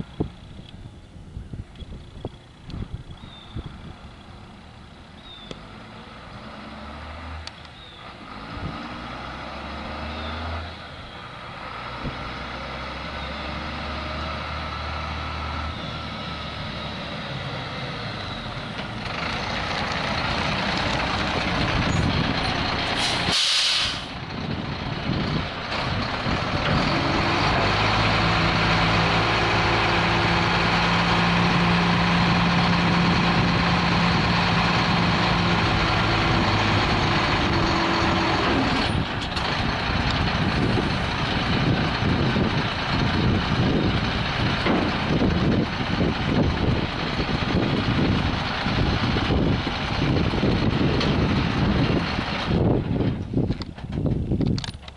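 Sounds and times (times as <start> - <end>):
diesel truck engine running: 0.0 - 54.9
air brake hiss: 23.0 - 24.2.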